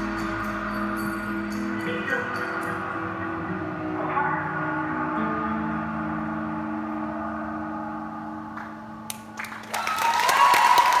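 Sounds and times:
audience applause and cheering: 9.1 - 11.0.

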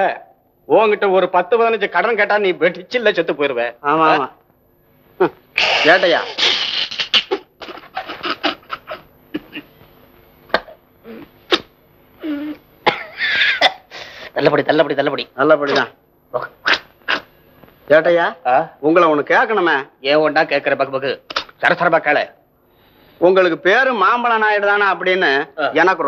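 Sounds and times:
man speaking: 5.2 - 6.4
man laughing: 5.9 - 9.8, 13.0 - 13.7.

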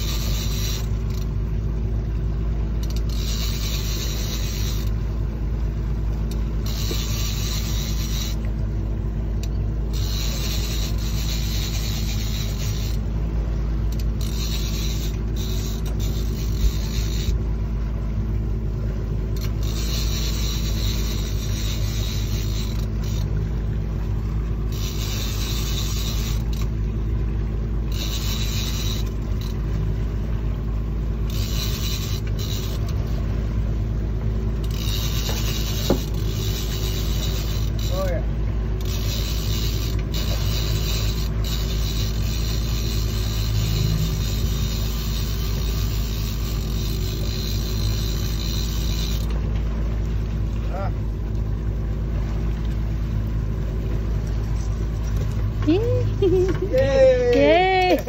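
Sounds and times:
outboard motor running: 0.0 - 58.0
water noise: 0.0 - 58.0
wind: 0.0 - 58.0.

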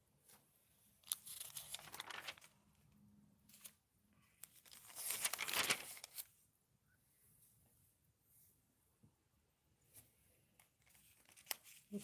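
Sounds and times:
magazine pages rustling: 1.0 - 2.8, 3.4 - 3.8, 4.4 - 6.4, 10.6 - 12.0.

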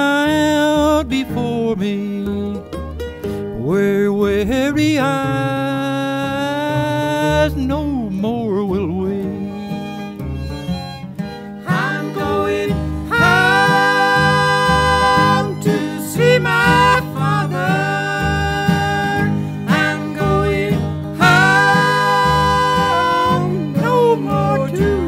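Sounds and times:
fiddle melody: 0.0 - 25.0
upright bass and guitar rhythm: 0.0 - 25.0.

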